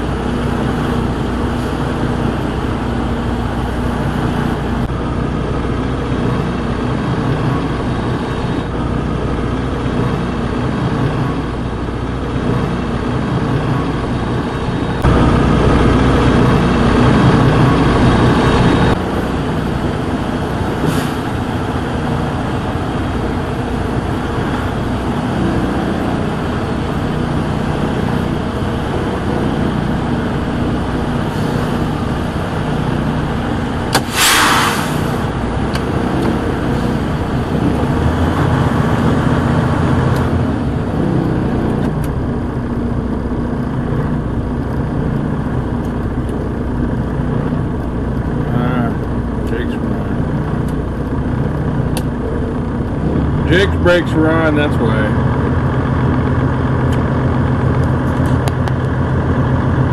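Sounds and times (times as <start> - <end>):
diesel truck engine running: 0.0 - 59.9
loud air hiss: 33.9 - 35.3.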